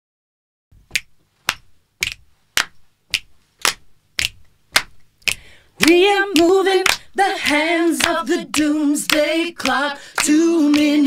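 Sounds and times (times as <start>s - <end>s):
group hand claps: 0.9s - 11.0s
person singing: 5.8s - 11.0s.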